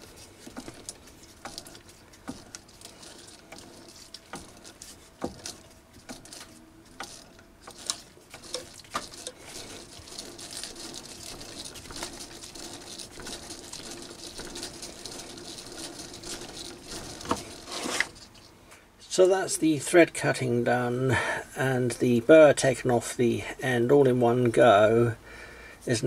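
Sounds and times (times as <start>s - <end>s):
tap scraping rasp in metal: 0.0s - 18.5s.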